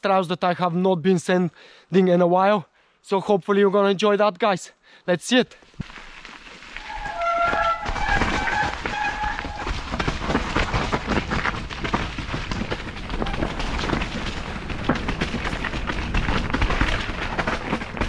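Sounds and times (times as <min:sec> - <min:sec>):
mountain bike clattering over trail: 0:05.8 - 0:18.0
short squeals: 0:06.8 - 0:10.0.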